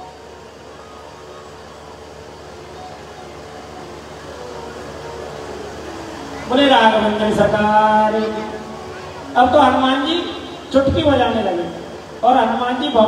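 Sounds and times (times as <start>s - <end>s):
faint held musical notes: 0.0s - 10.8s
sound system background noise: 0.0s - 13.0s.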